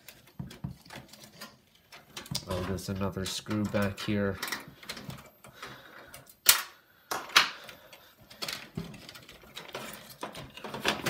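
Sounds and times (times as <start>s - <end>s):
metal parts clicking and knocking: 0.0s - 11.0s.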